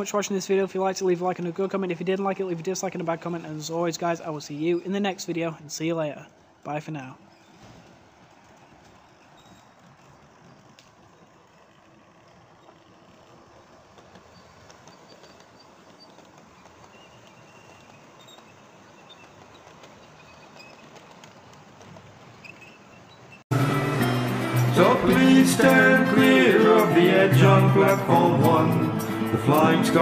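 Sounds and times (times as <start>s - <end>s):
model trains running on track: 0.0s - 7.2s, 7.9s - 30.0s.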